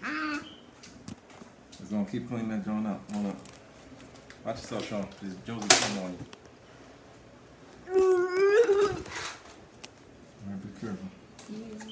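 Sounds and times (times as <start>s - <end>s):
high-pitched vocal cry: 0.0s - 0.6s, 7.8s - 9.2s.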